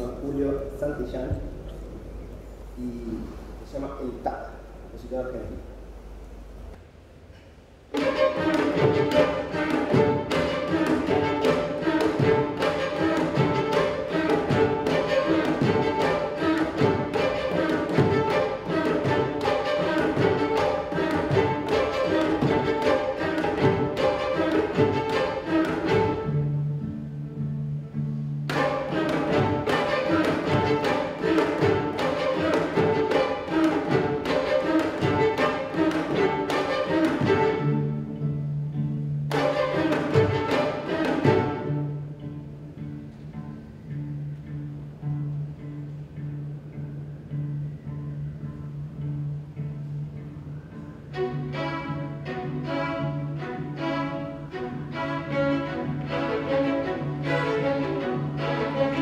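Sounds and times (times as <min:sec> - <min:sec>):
string orchestra playing: 0:00.0 - 0:05.2, 0:07.8 - 0:59.0.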